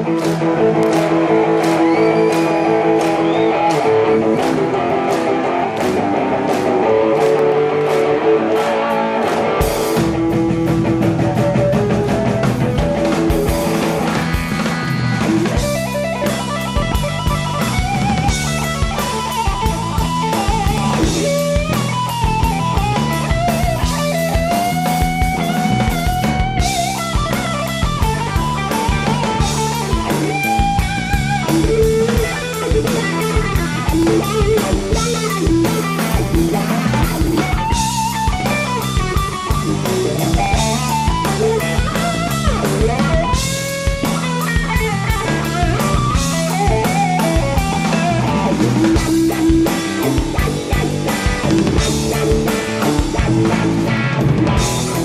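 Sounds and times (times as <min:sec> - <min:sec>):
distorted electric guitar with wah: 0:00.0 - 0:55.0
drum kit: 0:00.0 - 0:55.0
electric bass: 0:00.0 - 0:55.0.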